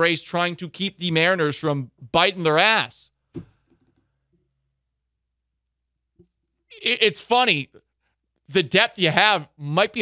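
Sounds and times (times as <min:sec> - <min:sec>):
man speaking: 0:00.0 - 0:03.1, 0:06.7 - 0:07.9, 0:08.5 - 0:10.0.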